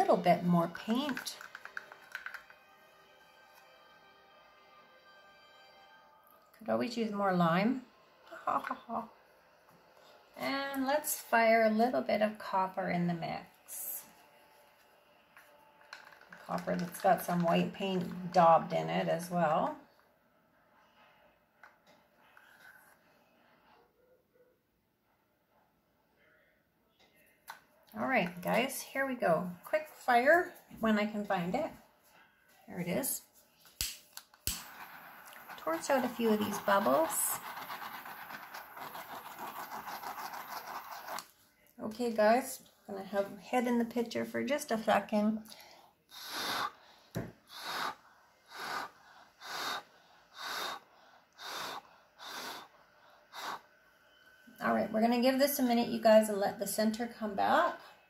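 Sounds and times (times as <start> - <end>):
person blowing short puffs: 47.4 - 49.8.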